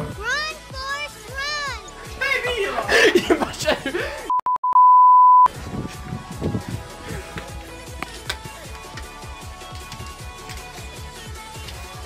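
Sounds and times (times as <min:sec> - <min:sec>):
censor bleep tone: 0:04.3 - 0:05.5.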